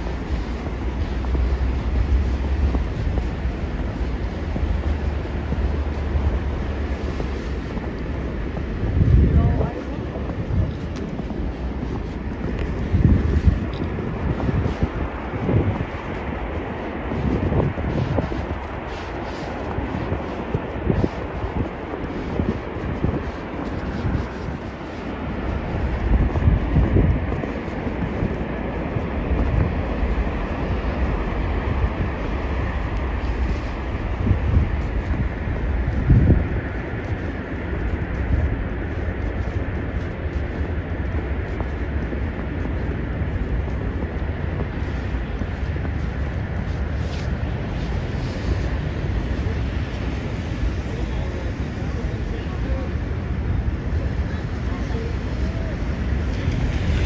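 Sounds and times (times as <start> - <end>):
footsteps crunching in snow: 0.0 - 57.0
low outdoor rumble: 0.0 - 57.0
wind buffeting microphone: 0.0 - 57.0.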